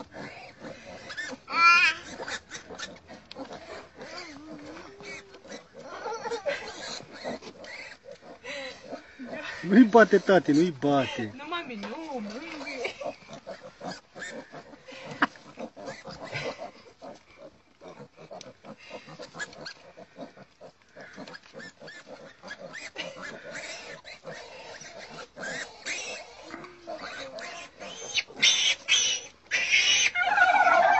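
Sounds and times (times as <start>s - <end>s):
piglets grunting and squealing: 0.0s - 30.9s.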